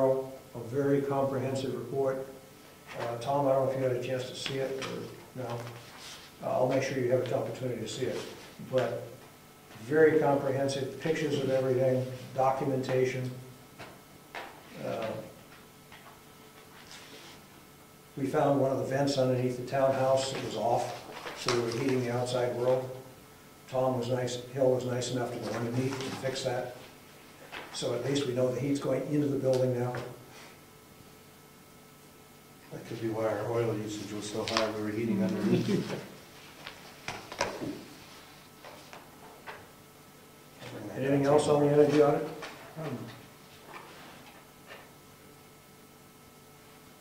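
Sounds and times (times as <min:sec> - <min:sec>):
paper rustling: 0:04.7 - 0:07.5, 0:20.3 - 0:22.0, 0:25.3 - 0:26.4, 0:33.9 - 0:39.5.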